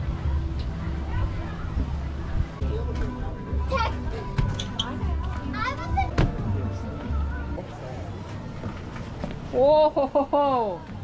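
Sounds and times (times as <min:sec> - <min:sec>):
background music: 0:00.0 - 0:11.0
children's voices: 0:05.1 - 0:07.5.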